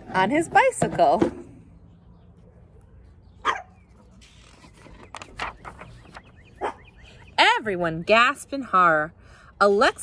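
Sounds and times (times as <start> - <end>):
dog barking: 3.4 - 3.8, 6.6 - 6.9.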